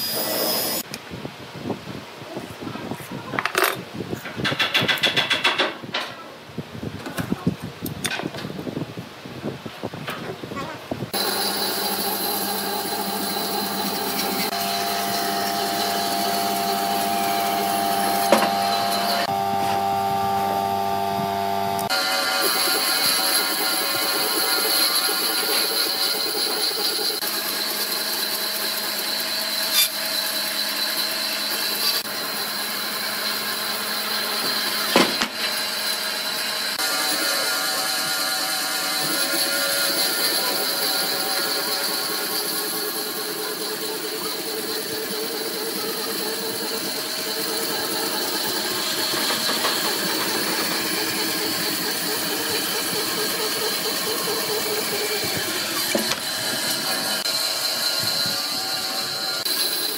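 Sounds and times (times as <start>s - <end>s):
bandsaw cutting log: 11.1s - 59.9s.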